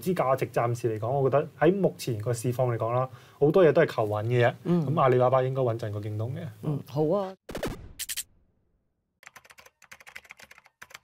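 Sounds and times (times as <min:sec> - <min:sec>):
fast keyboard key clicks: 0:09.2 - 0:11.0.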